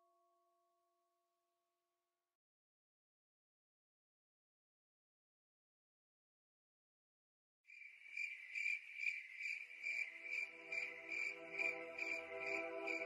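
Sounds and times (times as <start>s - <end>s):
rhythmic insect chirping: 7.7s - 13.0s.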